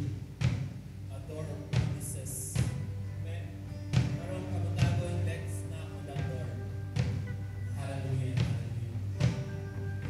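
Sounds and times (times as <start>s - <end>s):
kick and tom drum hits: 0.0s - 0.9s
sustained keyboard and bass pad: 0.0s - 10.0s.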